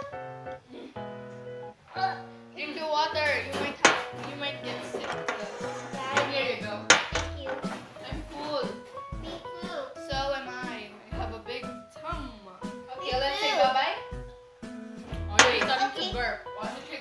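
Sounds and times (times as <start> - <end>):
background music: 0.0 - 17.0
girls' voices: 2.0 - 14.0, 15.3 - 17.0.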